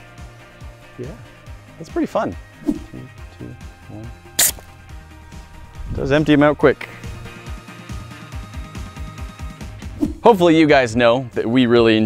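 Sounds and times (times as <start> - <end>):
background music: 0.0 - 12.0
gas inflator hiss: 4.4 - 4.7.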